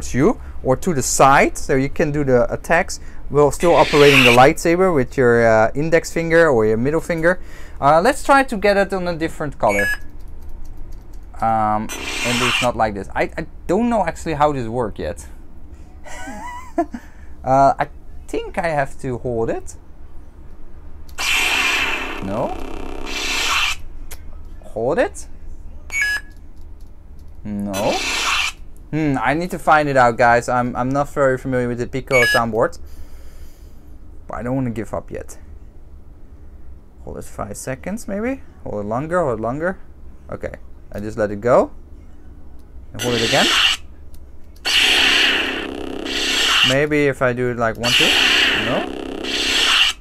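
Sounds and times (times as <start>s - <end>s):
lightsaber ignition effect: 3.6s - 4.4s, 11.9s - 12.8s, 21.2s - 23.8s, 27.8s - 28.6s, 43.0s - 43.8s, 44.6s - 46.9s, 47.8s - 50.0s.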